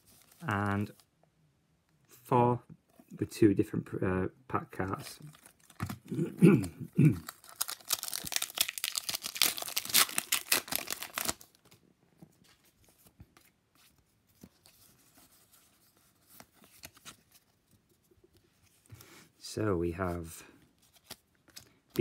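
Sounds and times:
faint rustles of handling: 0.0s - 1.2s, 11.6s - 22.0s
foil wrapper tearing and crinkling: 7.2s - 11.6s.

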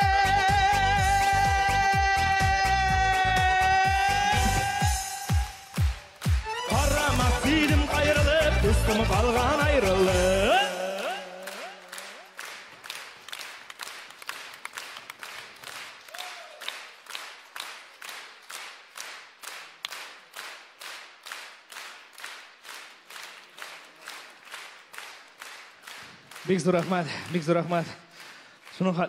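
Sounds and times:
audience clapping in unison: 0.0s - 29.0s.

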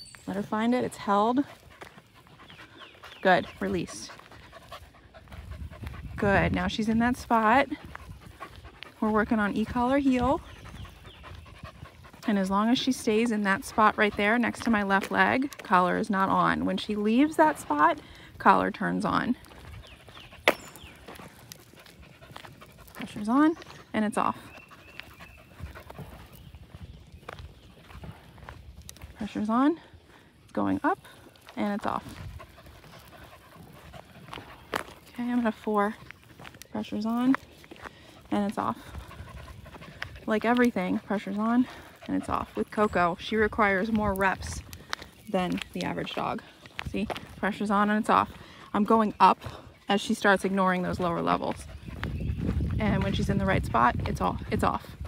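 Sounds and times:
footsteps on asphalt: 0.0s - 55.0s
dog panting: 0.4s - 55.0s.

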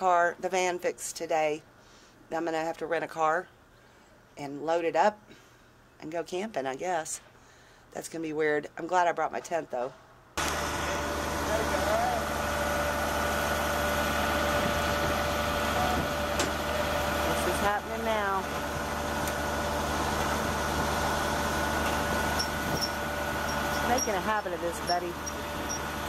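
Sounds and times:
truck engine running: 10.4s - 26.0s
winch and hydraulics whining: 10.4s - 26.0s.

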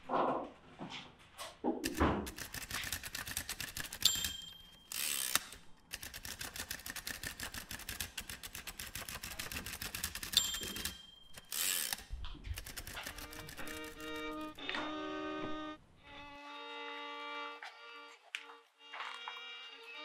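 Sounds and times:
rapid mechanical ticking: 1.9s - 14.6s.

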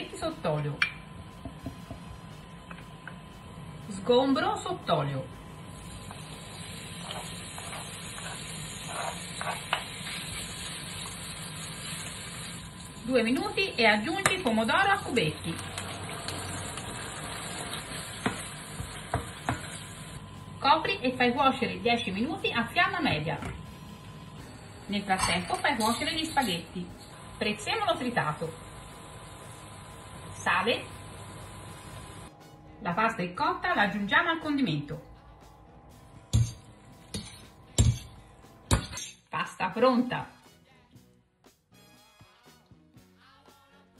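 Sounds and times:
quiet background music: 0.0s - 43.9s
tomatoes sizzling in hot oil: 5.7s - 20.2s, 24.6s - 32.3s.

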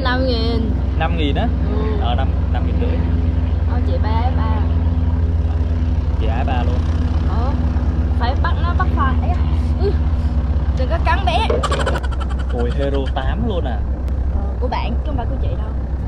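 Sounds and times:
low mechanical hum: 0.0s - 16.0s
two people talking quietly: 1.0s - 3.1s, 6.2s - 6.8s, 12.5s - 13.8s.

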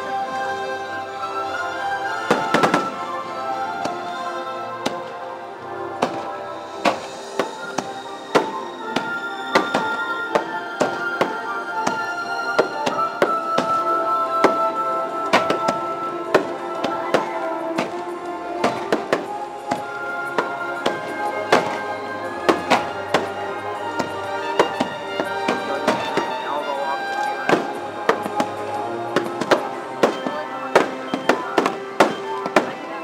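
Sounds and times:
music soundtrack: 0.0s - 33.0s
fireworks bursting: 2.1s - 33.0s.

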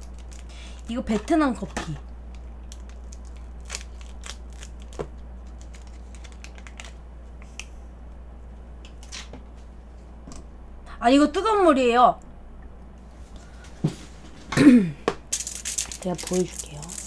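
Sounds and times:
packet wrappers crinkling: 0.0s - 1.2s, 2.2s - 7.0s, 15.3s - 17.0s
steady low hum: 0.0s - 17.0s.

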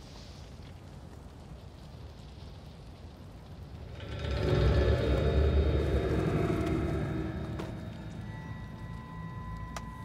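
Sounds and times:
deep rumble: 3.2s - 10.0s
dramatic score tones: 3.8s - 10.0s.

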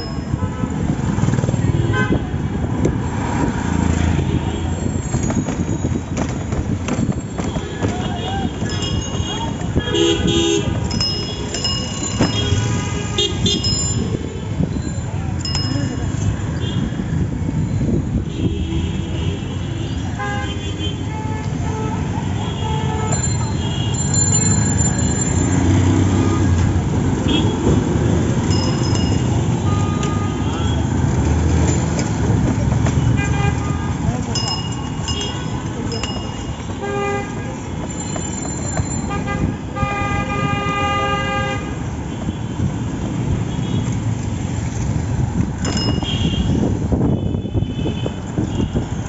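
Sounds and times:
rumble of vehicles: 0.0s - 49.0s
vehicle horn tooting: 7.5s - 10.8s, 12.3s - 13.7s, 39.1s - 42.7s, 46.0s - 48.8s
horn honking: 12.0s - 14.0s, 39.0s - 42.7s
voices: 13.5s - 16.6s, 32.3s - 39.1s.

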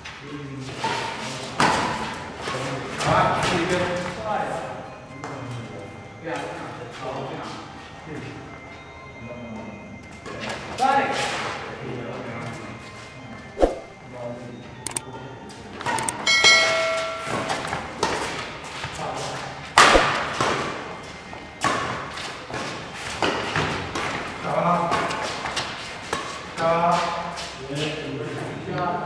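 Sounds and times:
racket striking shuttlecock: 19.8s - 20.9s.

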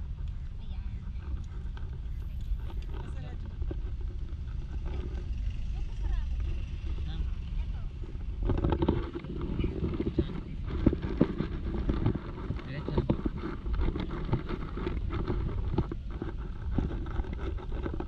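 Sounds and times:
low street rumble: 0.0s - 18.0s
people talking: 0.3s - 3.6s, 5.7s - 8.0s, 9.4s - 10.7s, 12.6s - 13.2s.

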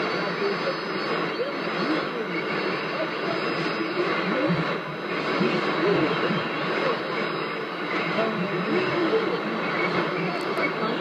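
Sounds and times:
faint voice on radio: 0.0s - 11.0s
radio static hiss: 0.0s - 11.0s.

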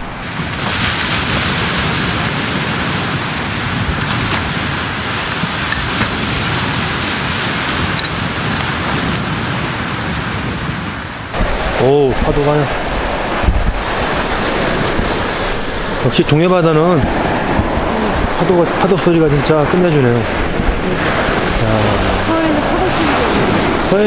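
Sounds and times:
waves breaking on shore: 0.0s - 24.0s.

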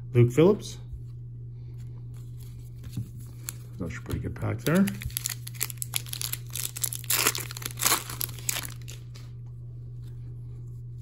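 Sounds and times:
foil wrapper crinkling: 4.6s - 9.3s.

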